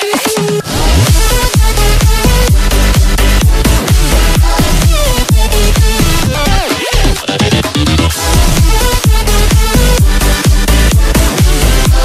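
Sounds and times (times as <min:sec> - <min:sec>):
deep bass hits: 0:00.6 - 0:06.6, 0:08.0 - 0:12.0.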